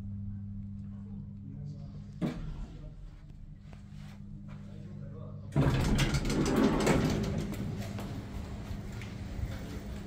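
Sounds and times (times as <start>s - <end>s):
elevator doors sliding open: 5.6s - 10.0s.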